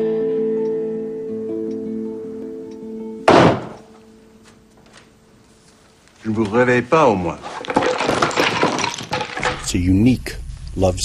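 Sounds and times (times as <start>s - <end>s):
soft music with held notes: 0.0s - 5.5s
door slamming: 3.3s - 3.9s.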